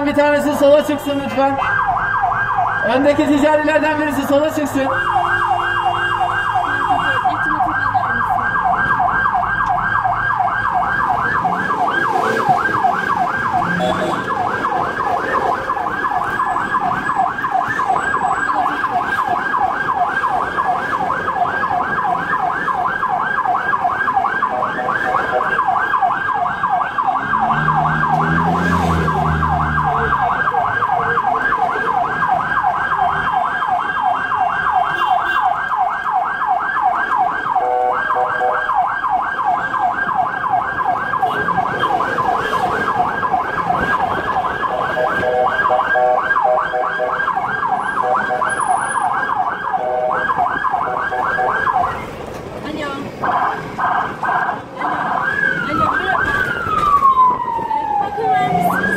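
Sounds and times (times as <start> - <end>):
ambulance siren yelping: 0.0 - 58.9.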